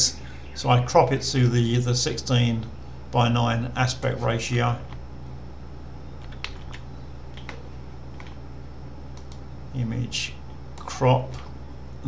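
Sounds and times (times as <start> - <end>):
steady low hum: 0.0 - 12.0
computer mouse clicks: 6.2 - 8.4, 9.1 - 9.4.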